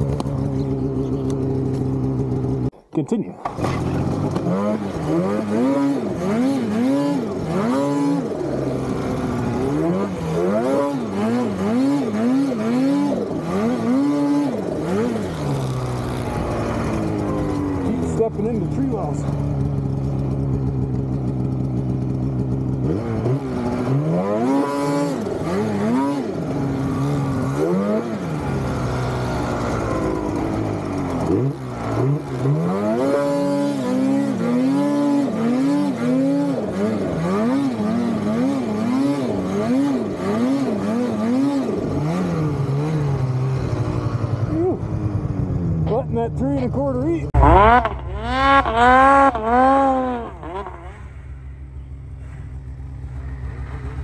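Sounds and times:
snowmobile engine revving: 0.0s - 54.0s.

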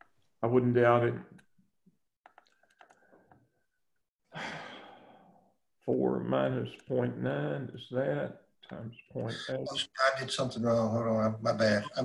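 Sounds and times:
person sighing: 4.3s - 5.2s.

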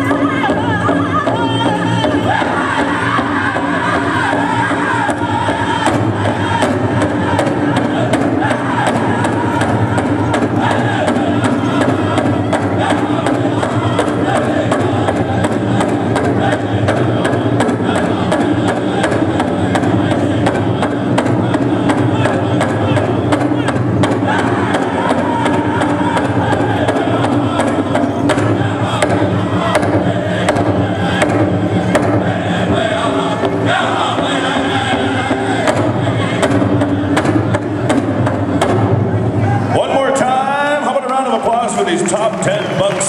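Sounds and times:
big drum beaten steadily: 0.0s - 40.9s
group singing in chorus: 0.0s - 40.9s.

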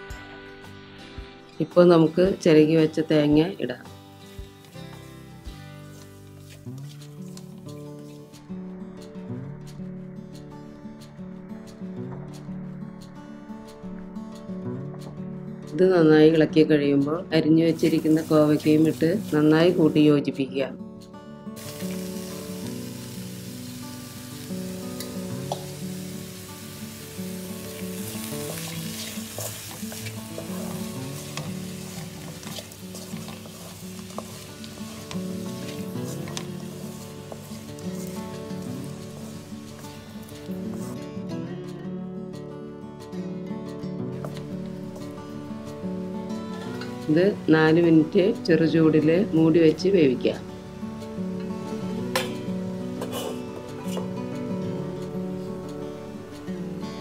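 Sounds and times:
background instrumental music: 0.0s - 57.0s
vegetables sizzling in hot oil: 3.2s - 8.4s, 17.7s - 20.1s, 21.6s - 41.0s
stirrer scraping a wok: 27.7s - 41.0s.

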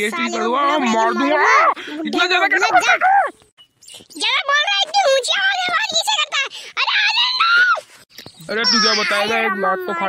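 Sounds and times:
cartoon character high-pitched scream: 8.6s - 10.0s
man shouting: 8.6s - 10.0s.

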